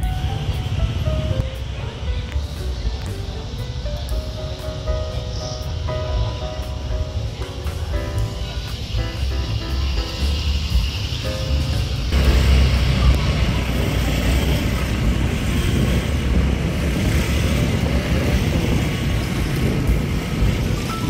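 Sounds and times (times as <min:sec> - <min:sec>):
car driving slowly uphill: 0:00.0 - 0:21.0
music: 0:00.0 - 0:21.0.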